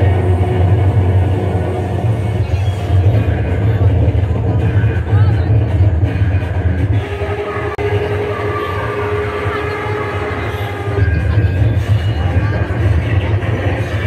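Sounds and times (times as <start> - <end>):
deep bass: 0.0 - 14.0
distorted amplified music: 0.0 - 14.0.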